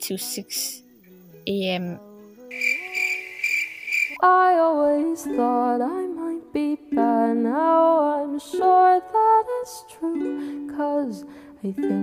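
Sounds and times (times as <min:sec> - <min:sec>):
crickets chirping: 0:00.1 - 0:04.2
song: 0:02.4 - 0:04.6.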